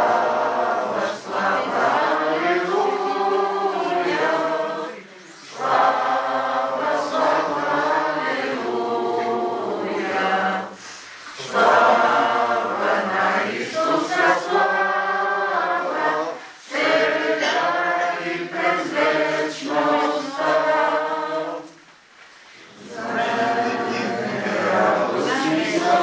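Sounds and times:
group singing unaccompanied: 0:00.0 - 0:21.9, 0:22.6 - 0:26.0.

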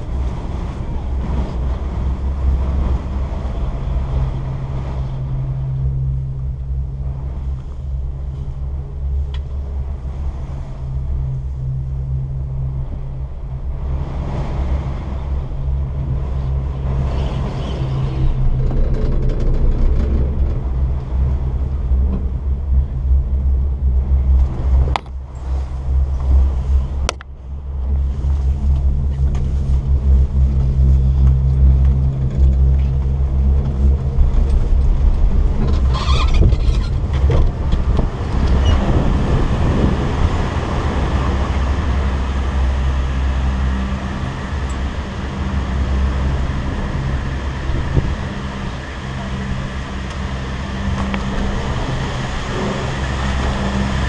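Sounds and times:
strong wind rumbling on microphone: 0:00.0 - 0:54.0.

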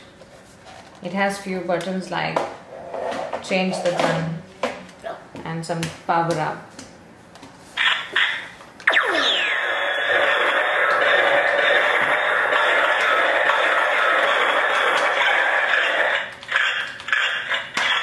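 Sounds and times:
electronic falling sweep: 0:07.8 - 0:14.7
steady electronic drone: 0:08.9 - 0:16.2.

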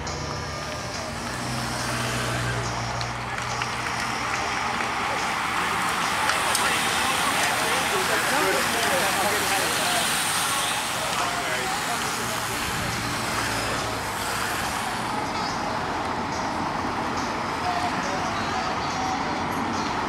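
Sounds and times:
cars driving past: 0:00.0 - 0:20.0
spectators' voices: 0:00.0 - 0:20.0.

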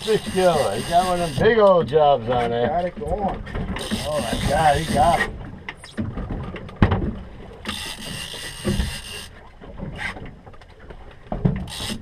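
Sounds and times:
fishing reel ratcheting: 0:00.0 - 0:01.4, 0:03.8 - 0:05.3, 0:07.6 - 0:09.4, 0:11.7 - 0:12.0
rumble of wind and water: 0:00.0 - 0:12.0.

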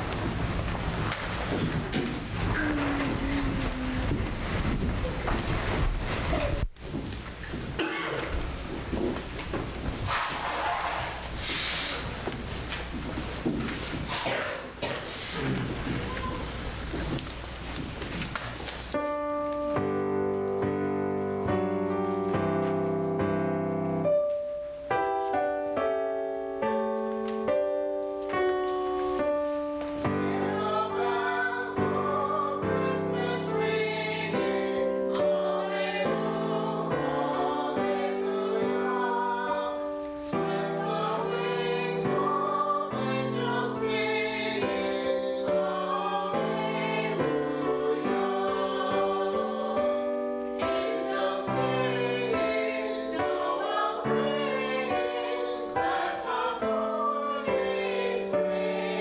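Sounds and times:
slow piano chords: 0:00.0 - 0:06.8, 0:18.9 - 0:59.0
low rumbling noise: 0:00.0 - 0:07.0
room noise: 0:00.0 - 0:59.0.

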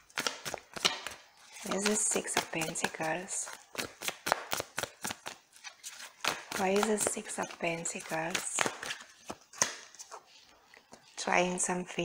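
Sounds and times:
cards being shuffled: 0:00.0 - 0:11.6.

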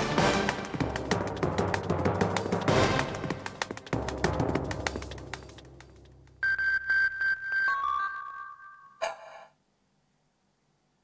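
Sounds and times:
percussive news jingle music: 0:00.0 - 0:08.5
synthesizer beeps: 0:06.4 - 0:09.4.

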